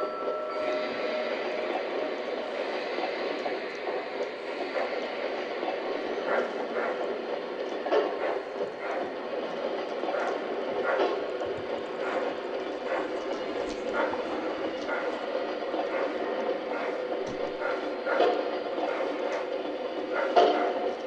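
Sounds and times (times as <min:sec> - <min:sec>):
wheels clicking over rail joints: 0:01.8 - 0:21.0.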